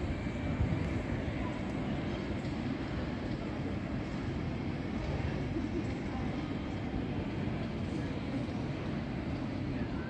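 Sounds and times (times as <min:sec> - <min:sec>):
city background rumble: 0:00.0 - 0:10.0.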